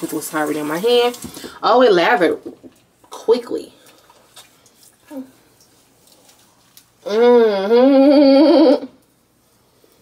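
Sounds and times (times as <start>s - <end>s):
wet squishing of hands lathering: 2.6s - 7.0s
person humming: 7.0s - 9.0s.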